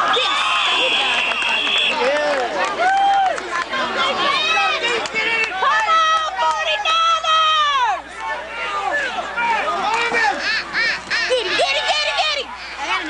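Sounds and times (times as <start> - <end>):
spectators shouting and cheering: 0.0 - 13.0.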